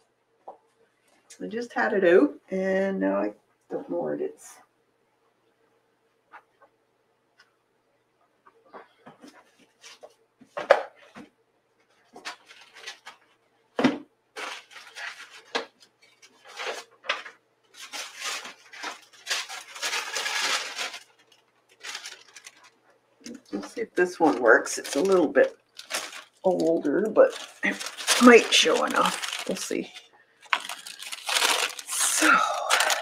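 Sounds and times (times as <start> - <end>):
paper rustling: 9.2 - 13.4, 14.4 - 33.0.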